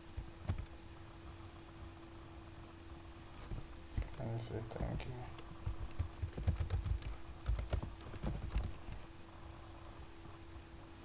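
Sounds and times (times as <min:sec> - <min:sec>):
faint steady hum: 0:00.0 - 0:11.0
keyboard typing clicks: 0:05.6 - 0:08.8.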